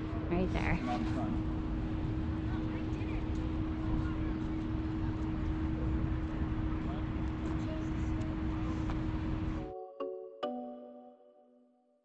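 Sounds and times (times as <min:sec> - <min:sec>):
steady low hum: 0:00.0 - 0:09.7
soft outro music: 0:09.6 - 0:11.8.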